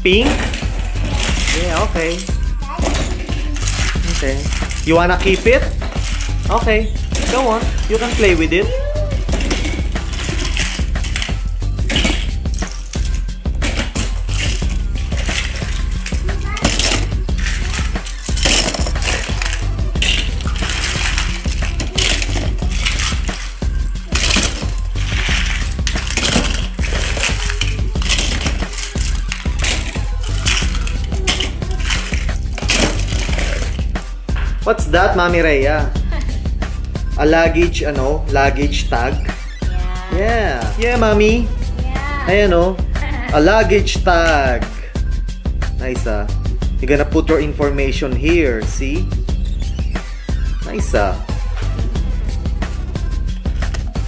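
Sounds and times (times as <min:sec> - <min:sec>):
music: 0:00.0 - 0:54.0
toy trains clattering: 0:00.1 - 0:08.6, 0:09.2 - 0:33.9.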